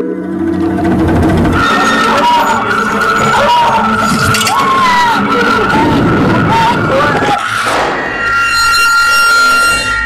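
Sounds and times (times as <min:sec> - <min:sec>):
tense electronic drone: 0:00.0 - 0:10.0.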